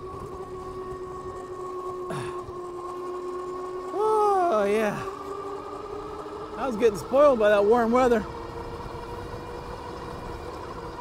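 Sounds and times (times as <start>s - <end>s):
electric motor whining: 0.0s - 11.0s
wind: 0.0s - 11.0s.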